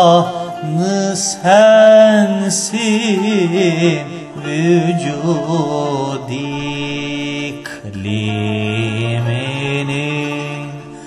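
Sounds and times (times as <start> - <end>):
man singing long notes: 0.0 - 11.0.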